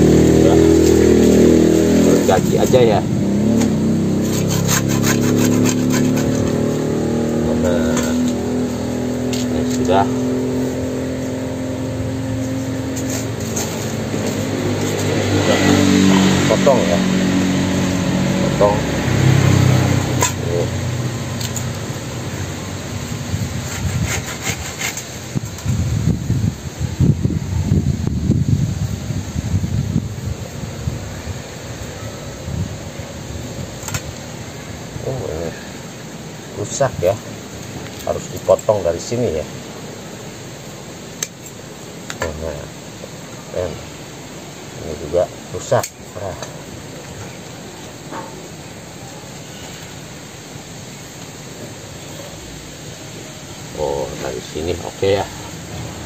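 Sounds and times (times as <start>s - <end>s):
vehicle engine running: 0.0s - 23.6s
machete hacking at roots: 3.4s - 6.8s.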